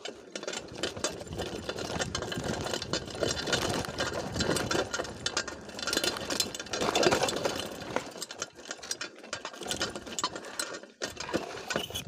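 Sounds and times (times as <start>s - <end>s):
mountain bike rattling and clicking: 0.0s - 12.0s.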